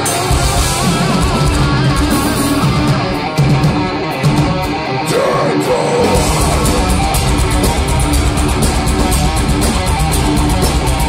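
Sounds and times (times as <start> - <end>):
thrash metal band playing live: 0.0 - 11.0.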